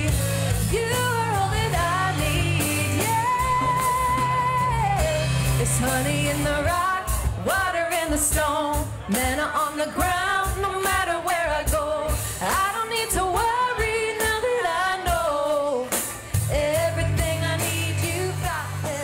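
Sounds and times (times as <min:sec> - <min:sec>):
band with drums and bass: 0:00.0 - 0:19.0
person singing: 0:00.0 - 0:19.0.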